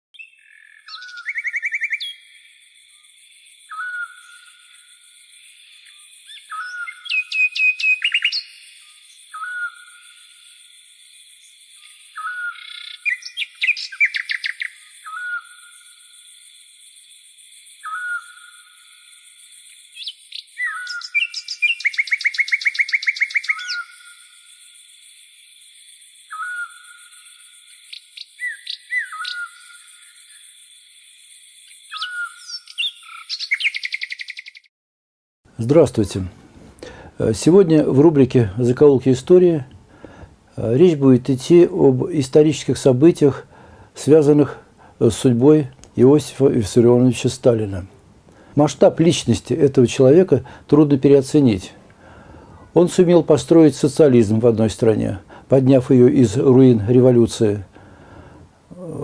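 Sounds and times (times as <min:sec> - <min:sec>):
songbirds calling and trilling: 0:00.2 - 0:34.7.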